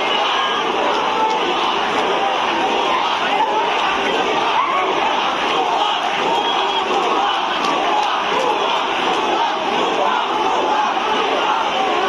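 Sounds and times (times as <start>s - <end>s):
crowd shouting slogans: 0.0s - 12.0s.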